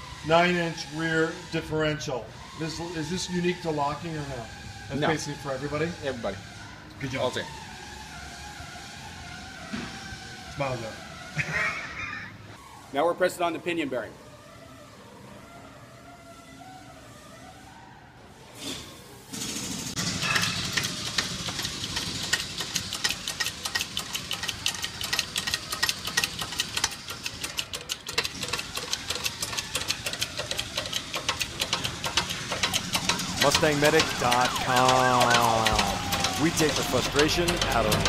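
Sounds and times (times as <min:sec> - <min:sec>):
shop press chattering: 0:20.0 - 0:38.0.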